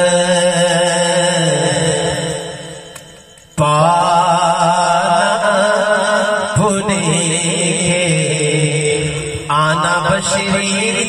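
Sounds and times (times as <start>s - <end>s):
man singing over loudspeakers: 0.0s - 11.0s.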